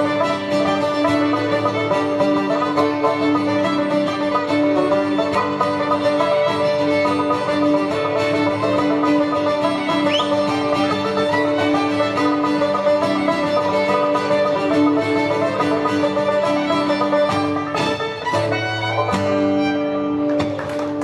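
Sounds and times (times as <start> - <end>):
banjo: 0.0 - 21.0
fiddle: 0.0 - 21.0
folk band instrumental: 0.0 - 21.0
strummed acoustic guitar: 0.0 - 21.0.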